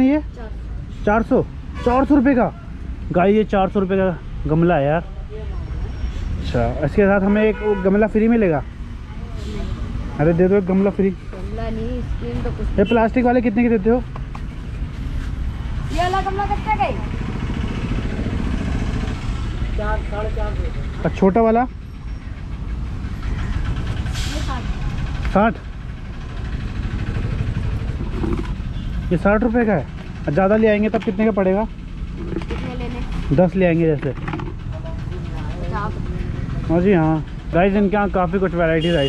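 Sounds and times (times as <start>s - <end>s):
low engine rumble: 0.0s - 39.0s.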